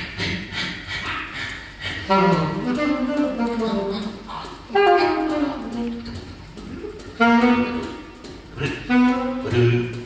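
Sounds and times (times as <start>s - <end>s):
soft breathy pulses: 0.0s - 2.2s.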